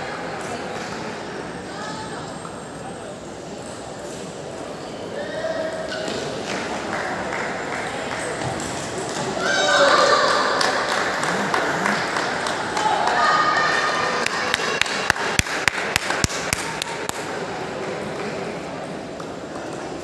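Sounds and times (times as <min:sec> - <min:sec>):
voices in a large hall: 0:00.0 - 0:20.0.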